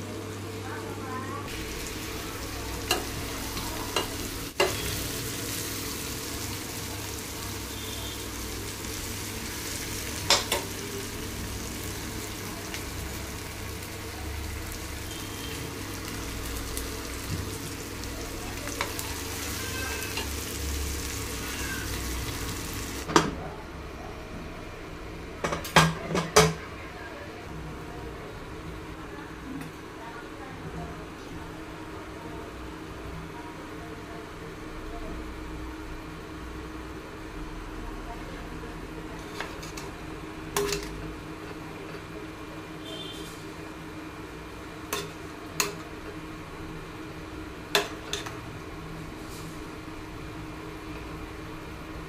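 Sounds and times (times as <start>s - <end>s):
chicken sizzling in a pan: 1.4s - 23.1s.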